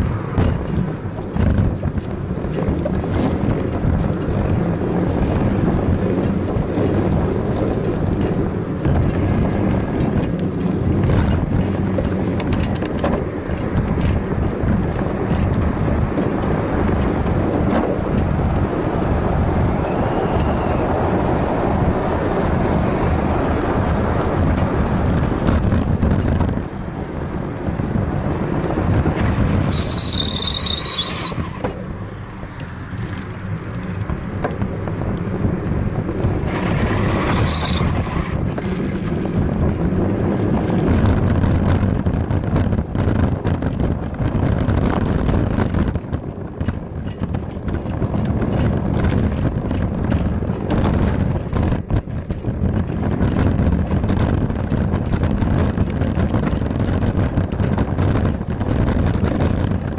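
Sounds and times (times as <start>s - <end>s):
bicycle tyres rolling: 0.0s - 59.9s
wind buffeting microphone: 0.0s - 59.9s
high wavering brake squeal: 19.8s - 21.0s, 29.6s - 31.6s, 37.0s - 38.4s.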